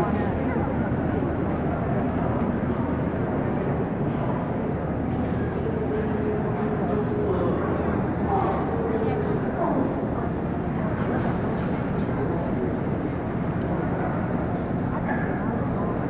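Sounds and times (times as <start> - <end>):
chatter of many people: 0.0 - 16.0
large hall noise: 0.0 - 16.0.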